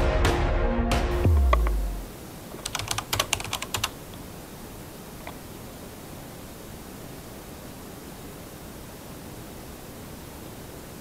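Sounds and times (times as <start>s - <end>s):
steady hiss: 1.3s - 11.0s
sharp clicks: 1.4s - 1.8s, 2.6s - 4.2s.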